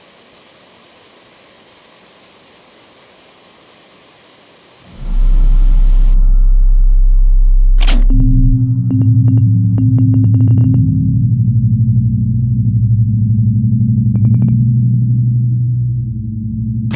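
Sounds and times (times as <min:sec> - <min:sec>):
neon sign electrical buzz: 0:00.0 - 0:06.2.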